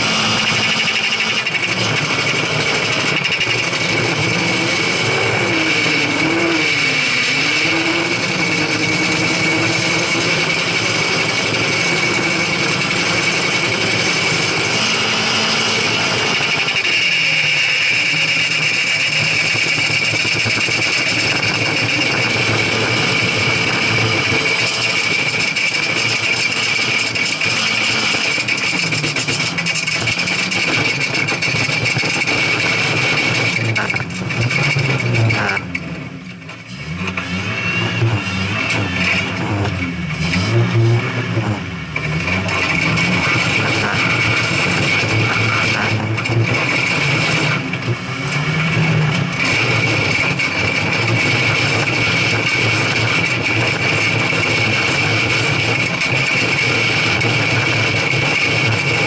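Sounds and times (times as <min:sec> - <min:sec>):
rally car engine revving: 0:00.0 - 0:59.0.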